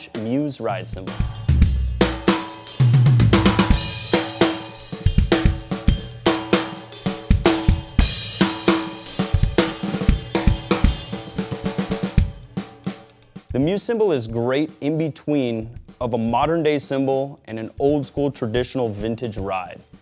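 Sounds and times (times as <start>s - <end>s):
drum kit groove on ride cymbal: 0.0s - 20.0s.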